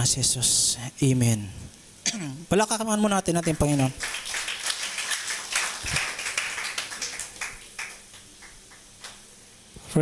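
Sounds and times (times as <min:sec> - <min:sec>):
crowd applauding: 0:03.4 - 0:08.8.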